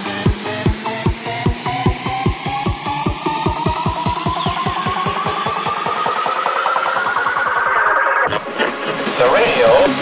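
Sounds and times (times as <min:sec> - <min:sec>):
rising synth line: 0:00.0 - 0:09.0
heavy bass kicks: 0:00.3 - 0:04.4.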